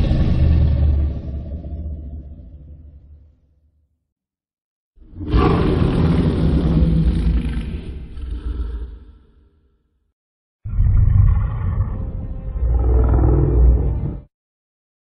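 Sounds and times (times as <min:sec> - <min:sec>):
deep rumbling monster roar: 0:00.0 - 0:03.4, 0:05.0 - 0:09.7, 0:10.6 - 0:14.3.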